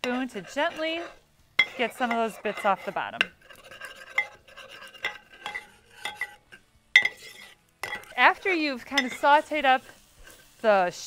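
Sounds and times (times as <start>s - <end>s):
metal spoon scraping a pan: 0.0s - 10.8s
spoon clinking on pan: 1.6s - 2.3s, 4.0s - 6.4s, 7.0s - 8.2s, 8.9s - 9.3s.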